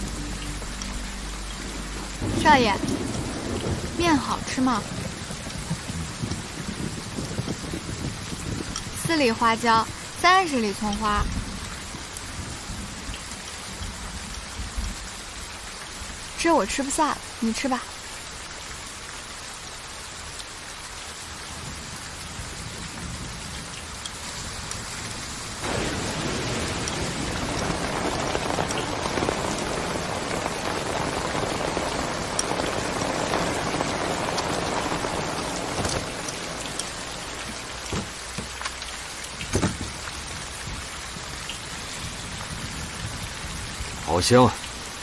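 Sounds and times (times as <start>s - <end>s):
heavy rain falling: 0.0s - 45.0s.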